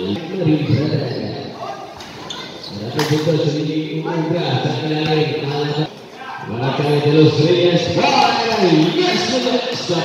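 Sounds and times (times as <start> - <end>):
man talking: 0.0 - 1.7, 2.7 - 10.0.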